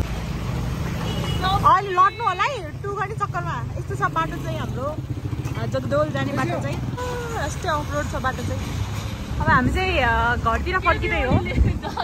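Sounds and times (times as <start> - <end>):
motor scooters rumbling: 0.0 - 12.0.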